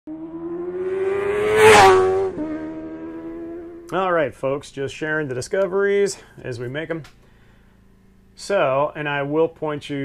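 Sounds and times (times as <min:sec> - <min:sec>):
vehicle engine rising in pitch: 0:00.1 - 0:04.0.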